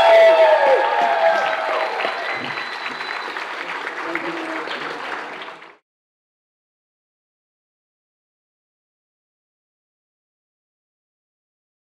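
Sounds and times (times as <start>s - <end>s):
shouted cheers: 0.0s - 4.8s
audience applauding: 0.0s - 5.8s.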